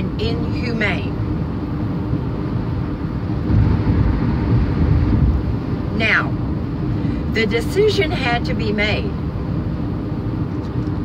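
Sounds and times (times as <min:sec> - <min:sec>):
van road and engine rumble: 0:00.0 - 0:11.0.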